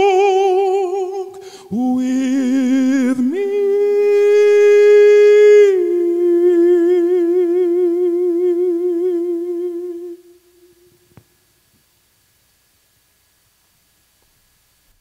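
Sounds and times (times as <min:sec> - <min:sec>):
man singing long note: 0:00.0 - 0:11.0.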